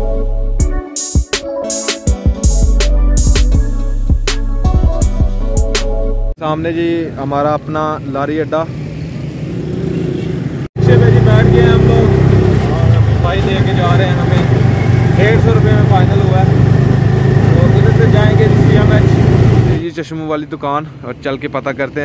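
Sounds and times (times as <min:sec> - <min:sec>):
street traffic: 0:06.4 - 0:22.0
voices: 0:10.8 - 0:19.2
rickshaw engine running: 0:10.8 - 0:19.8.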